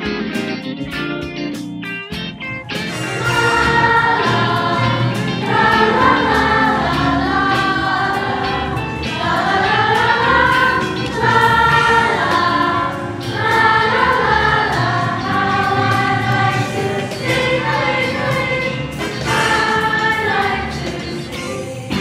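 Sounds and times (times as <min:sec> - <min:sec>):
choir singing long held notes: 0:02.8 - 0:22.0.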